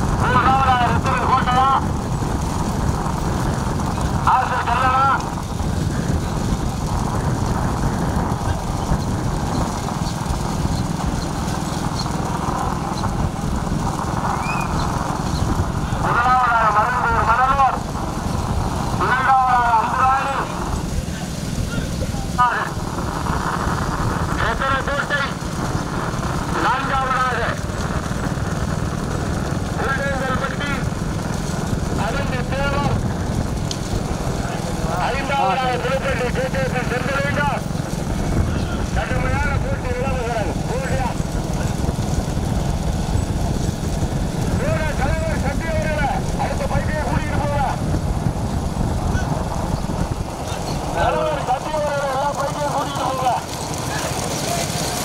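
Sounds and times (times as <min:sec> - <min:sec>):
vehicle engine and road rumble: 0:00.0 - 0:55.0
men shouting: 0:50.5 - 0:55.0.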